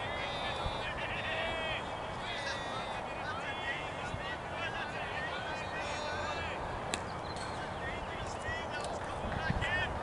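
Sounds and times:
distant people calling out: 0.0s - 10.0s.

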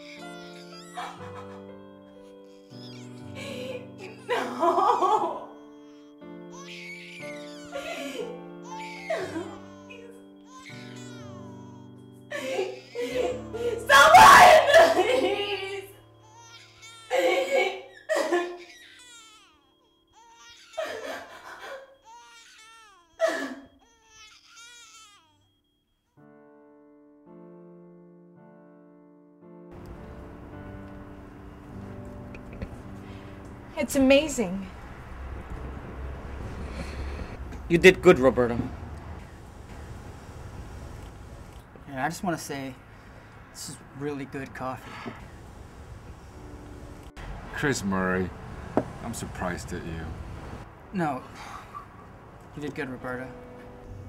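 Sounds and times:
soft piano chords: 0.0s - 22.5s, 26.2s - 54.0s
woman sobbing and crying out: 3.2s - 5.5s, 7.6s - 10.2s, 12.3s - 15.9s, 17.1s - 18.7s, 20.8s - 22.0s, 23.2s - 23.8s
woman crying out in pain: 7.2s - 10.1s, 23.2s - 23.8s
music of long held notes: 29.7s - 37.3s.

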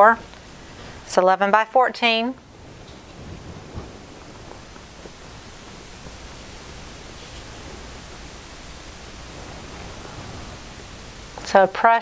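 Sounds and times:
faint low hum: 0.0s - 12.0s
steady background hiss: 0.0s - 12.0s.

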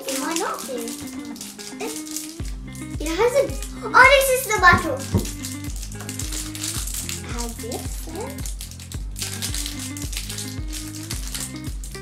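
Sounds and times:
background music: 0.0s - 12.0s
foil wrapper crinkling: 0.0s - 12.0s.

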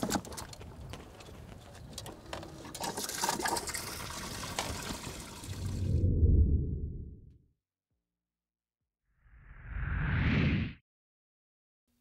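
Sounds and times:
water splashing and sloshing: 2.7s - 6.0s
low rumble: 5.6s - 7.5s.

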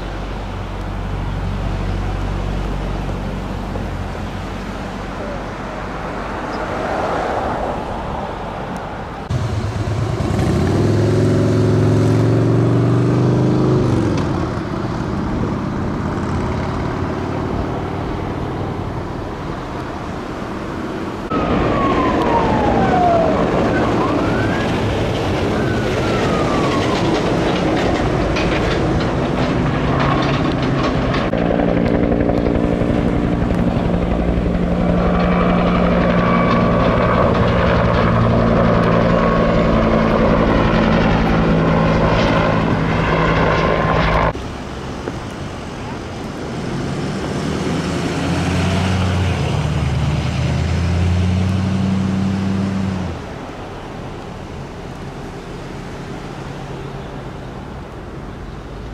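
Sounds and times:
steady engine drone: 0.0s - 6.7s, 7.8s - 58.9s
engine revving: 9.3s - 18.9s, 46.5s - 53.3s
helicopter rotor noise: 20.5s - 44.4s
siren wailing: 21.3s - 30.4s, 33.3s - 44.3s.

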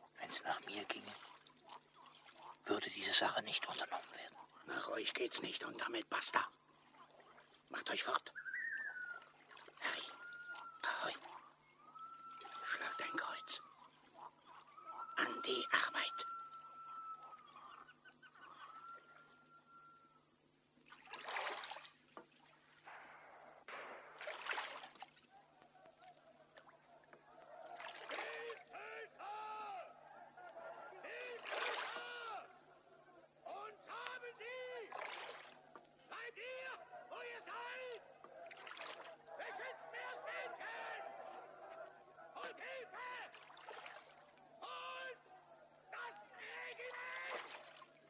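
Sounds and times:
paddles splashing in water: 0.0s - 5.2s, 6.2s - 19.9s, 20.7s - 48.0s
long whistle-like calls: 8.3s - 9.3s, 10.0s - 20.2s
short rising-and-falling calls: 8.4s - 9.4s, 10.1s - 20.3s.

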